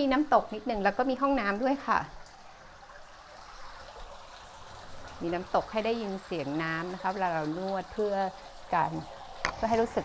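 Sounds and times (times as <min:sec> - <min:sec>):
water running into pool: 0:00.0 - 0:10.0.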